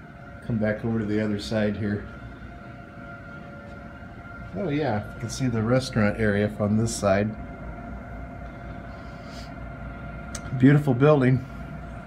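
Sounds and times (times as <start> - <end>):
low even hum: 0.0 - 12.0.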